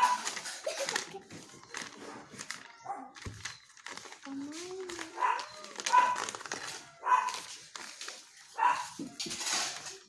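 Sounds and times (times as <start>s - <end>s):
dog barking: 0.0s - 0.3s, 5.2s - 6.3s, 7.0s - 7.4s, 8.6s - 9.0s.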